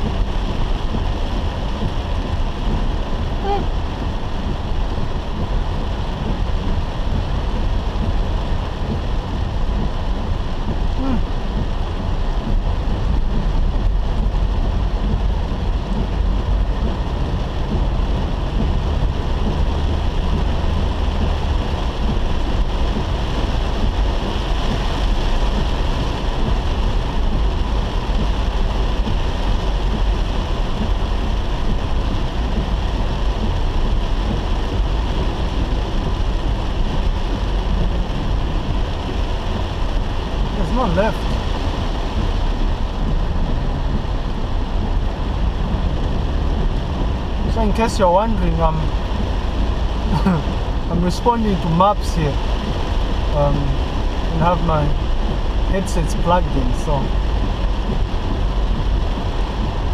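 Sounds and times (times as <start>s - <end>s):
car driving on wet road: 0.0s - 59.9s
heavy rain on car roof: 0.0s - 59.9s.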